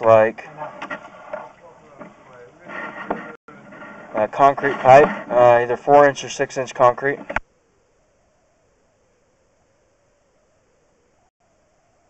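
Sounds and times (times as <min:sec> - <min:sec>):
man speaking hesitantly: 0:00.0 - 0:00.8, 0:04.2 - 0:07.3
low background noise: 0:00.0 - 0:12.0.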